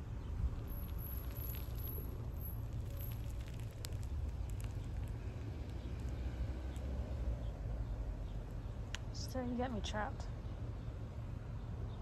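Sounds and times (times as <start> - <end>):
faint crackles and clicks: 0.4 - 7.0.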